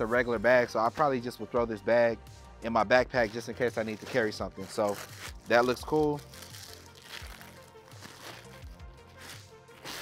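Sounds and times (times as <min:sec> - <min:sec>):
quiet background music: 0:00.0 - 0:10.0
fabric bag rustling: 0:03.2 - 0:10.0.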